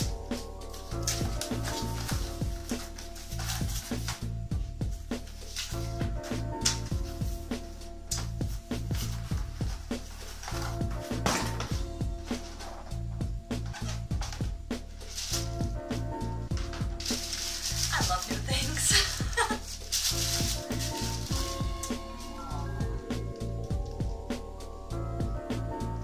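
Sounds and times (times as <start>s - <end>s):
tissue paper and cardboard rustling: 0.0s - 23.7s
background music with bass line: 0.0s - 26.0s.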